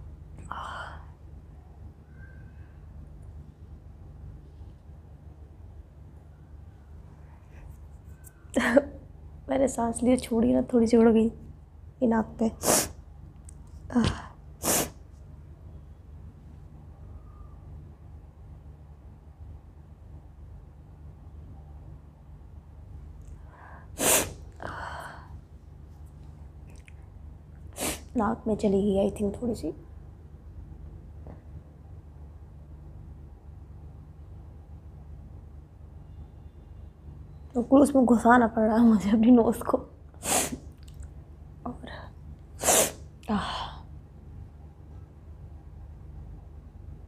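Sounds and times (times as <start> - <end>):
woman sneezing: 12.6 - 13.0, 14.0 - 15.0, 24.0 - 24.4, 27.8 - 28.1, 40.2 - 40.6, 42.6 - 43.0.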